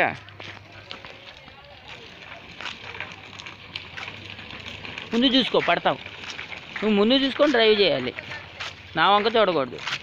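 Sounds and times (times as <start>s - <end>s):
bicycle rolling on concrete: 0.0s - 10.0s
footsteps on concrete: 0.0s - 10.0s.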